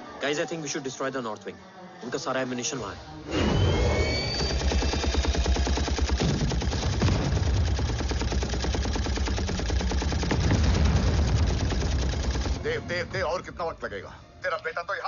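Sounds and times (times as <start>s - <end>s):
minigun firing burst: 3.4s - 13.4s.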